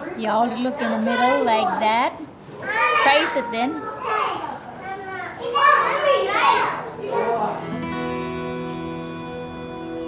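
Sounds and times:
child speaking: 0:00.0 - 0:01.9, 0:02.6 - 0:07.5.

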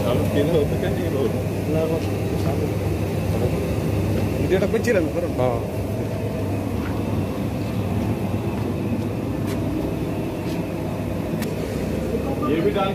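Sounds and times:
roasting machine humming: 0:00.0 - 0:12.9.

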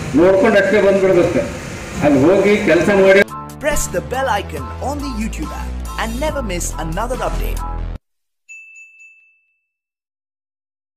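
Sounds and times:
bright bell ding: 0:08.5 - 0:09.8.

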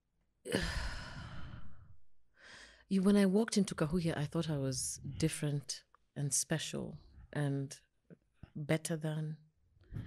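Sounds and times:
woman sighing: 0:00.5 - 0:01.6.

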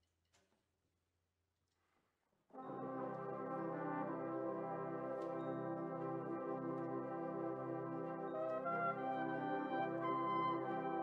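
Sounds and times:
brass band playing chords: 0:02.6 - 0:11.0.

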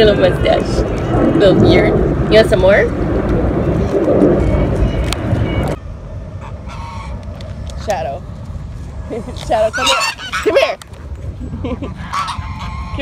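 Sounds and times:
low rumble: 0:00.0 - 0:13.0
goose honking: 0:06.4 - 0:07.2, 0:09.5 - 0:10.8, 0:11.9 - 0:13.0.

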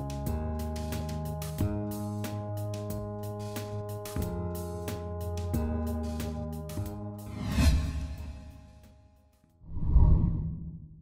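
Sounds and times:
deep whoosh: 0:07.3 - 0:08.5, 0:09.7 - 0:11.0.

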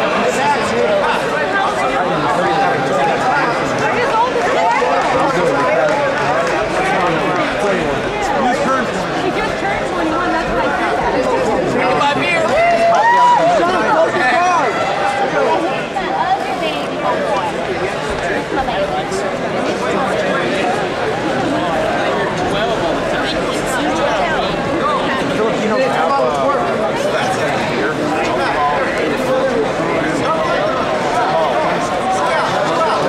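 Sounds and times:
crowd chatter: 0:00.0 - 0:33.0.

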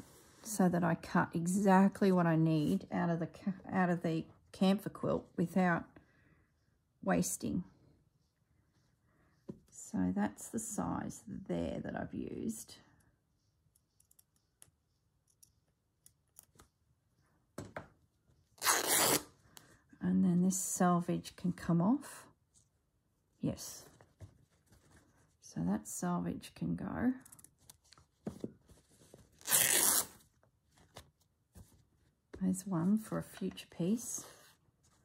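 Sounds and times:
fabric tearing by hand: 0:18.6 - 0:19.3, 0:29.4 - 0:30.1.

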